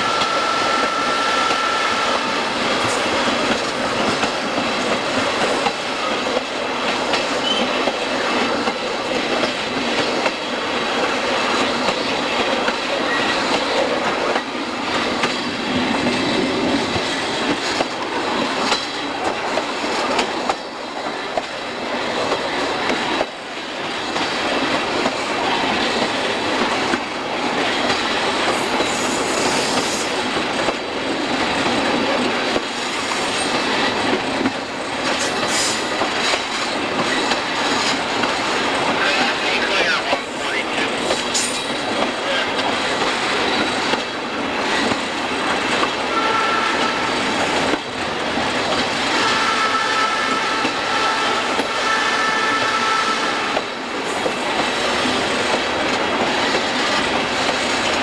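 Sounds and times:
train wheels rattling on rails: 0:00.0 - 0:58.0.

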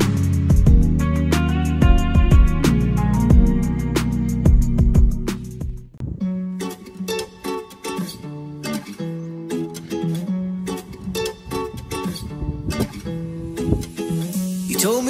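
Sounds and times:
acoustic guitar plucking: 0:00.0 - 0:15.0.

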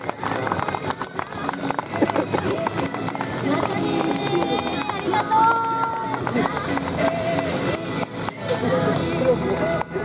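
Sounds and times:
scattered clapping: 0:00.0 - 0:10.0.

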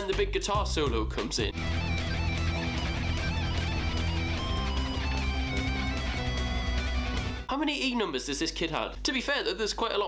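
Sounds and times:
pop backing track: 0:01.2 - 0:07.5
wavering guitar solo: 0:01.5 - 0:07.5.

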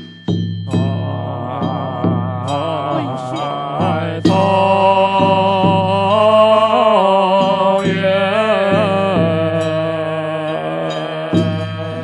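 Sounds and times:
ritual percussion strikes: 0:00.0 - 0:12.0
congregation chanting in unison: 0:00.7 - 0:12.0.

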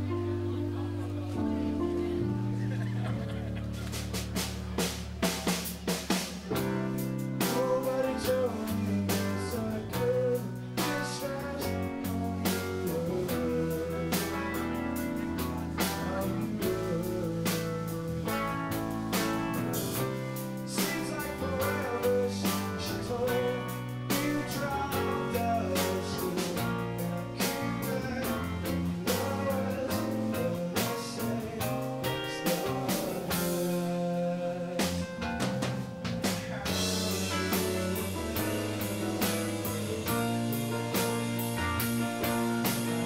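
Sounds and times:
live rock band playing: 0:00.0 - 0:43.0
man singing: 0:06.5 - 0:35.4, 0:36.2 - 0:43.0.

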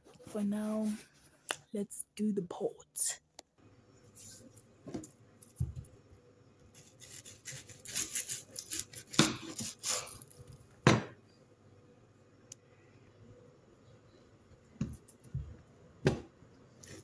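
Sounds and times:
knife slicing onion: 0:06.8 - 0:10.2.

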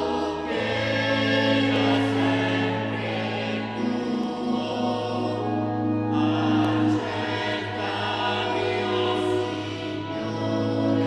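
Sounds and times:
choir singing a hymn: 0:00.0 - 0:11.0
sustained accompaniment: 0:00.0 - 0:11.0.

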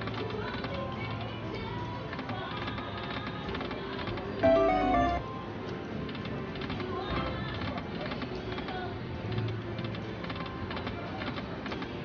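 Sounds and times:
slot machine reel ticking: 0:04.4 - 0:05.2
electronic slot machine music: 0:04.4 - 0:05.3.

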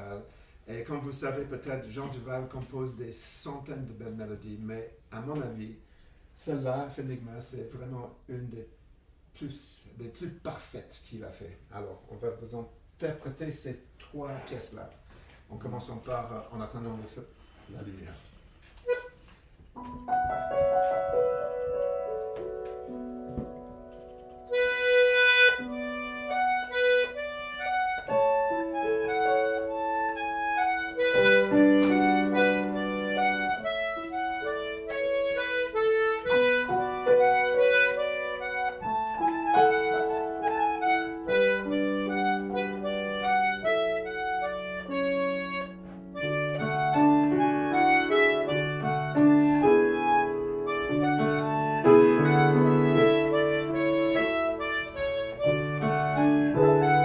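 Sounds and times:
button accordion melody: 0:18.8 - 0:57.0
grand piano chords: 0:19.8 - 0:57.0.

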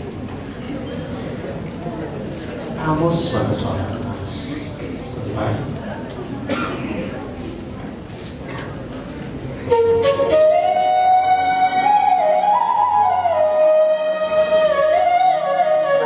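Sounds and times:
bamboo flute melody: 0:09.6 - 0:16.0.

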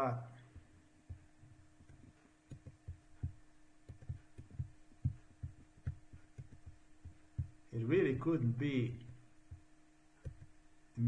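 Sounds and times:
faint electrical hum: 0:00.0 - 0:11.0
soft dull low thumps: 0:00.4 - 0:11.0.

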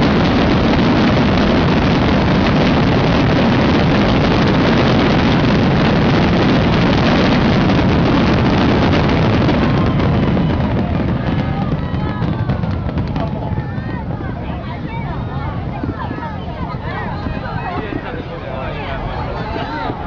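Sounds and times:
fireworks bursting and crackling: 0:00.0 - 0:20.0.

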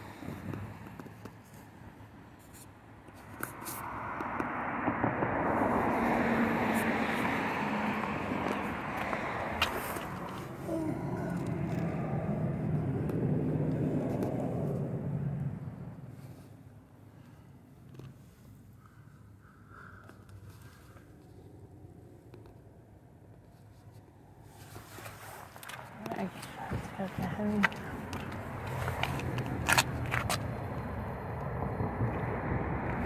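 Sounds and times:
passing vehicle engine and road noise: 0:00.0 - 0:33.0.

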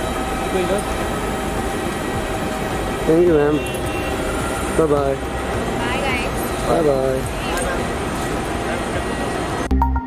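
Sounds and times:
rumbling mechanical noise: 0:00.0 - 0:09.7.

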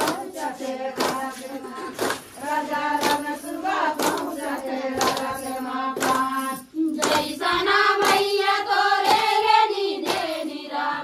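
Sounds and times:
hand claps: 0:00.0 - 0:10.7
women singing folk song: 0:00.0 - 0:11.0.

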